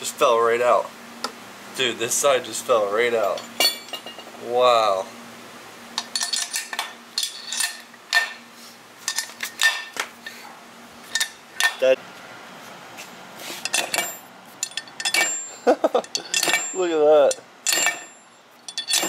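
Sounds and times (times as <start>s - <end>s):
metal engine parts clinking: 3.2s - 4.3s, 6.0s - 8.4s, 9.0s - 10.4s, 11.0s - 11.9s, 13.5s - 19.0s.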